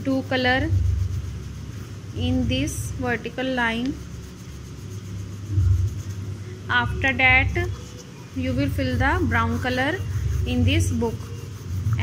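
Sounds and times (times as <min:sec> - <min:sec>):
low rumble: 0:05.5 - 0:07.8.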